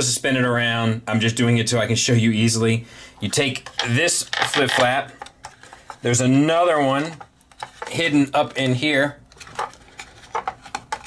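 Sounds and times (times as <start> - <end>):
plastic toy parts clicking: 3.6 - 5.3.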